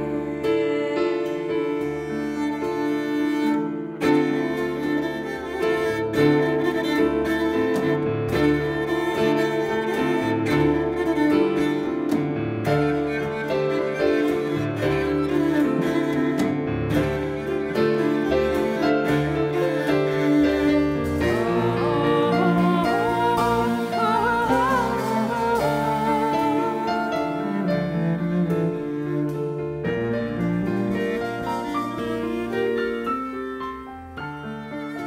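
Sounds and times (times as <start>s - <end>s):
cello bowed in long notes: 0.0s - 35.0s
piano accompaniment: 0.0s - 35.0s.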